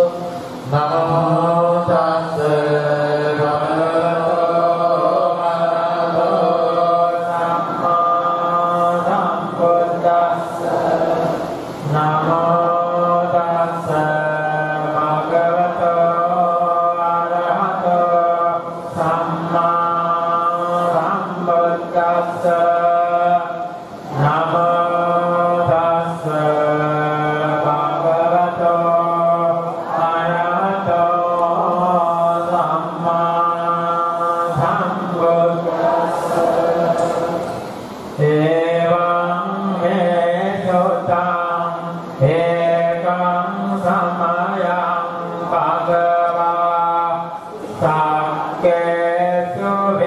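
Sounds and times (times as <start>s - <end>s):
monks chanting: 0.0s - 50.0s.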